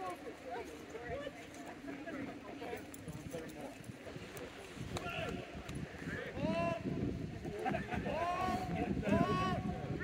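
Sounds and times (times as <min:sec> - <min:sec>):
players' voices across a field: 0:00.0 - 0:10.0.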